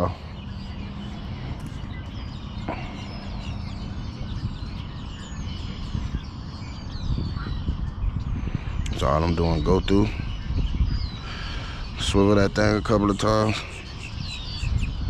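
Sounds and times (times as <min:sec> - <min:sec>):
birds chirping: 0:00.0 - 0:15.0.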